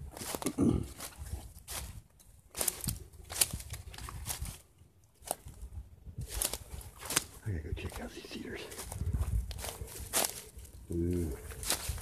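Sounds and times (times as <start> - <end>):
footsteps through dry leaves: 0.0 - 12.0.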